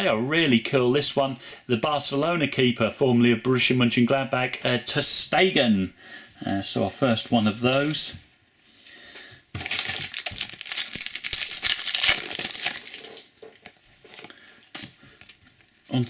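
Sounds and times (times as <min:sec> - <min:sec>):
foil pack crinkling: 0:09.6 - 0:16.0.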